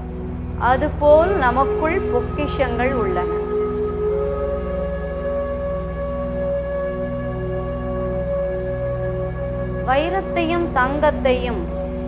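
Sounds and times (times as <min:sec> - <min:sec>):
low drone: 0:00.0 - 0:12.0
long held note: 0:01.1 - 0:10.8.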